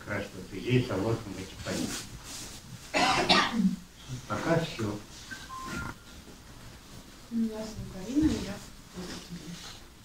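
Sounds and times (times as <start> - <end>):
person clearing throat: 3.0 - 3.8.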